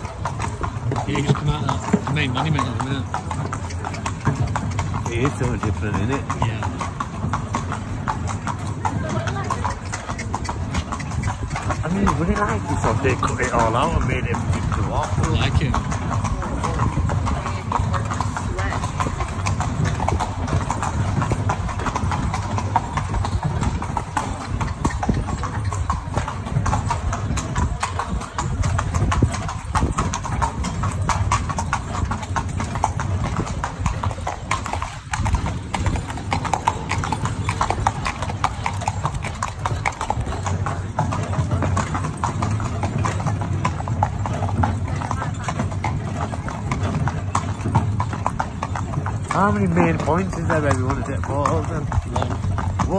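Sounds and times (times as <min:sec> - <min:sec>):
horse hooves clip-clopping: 0:00.0 - 0:52.9.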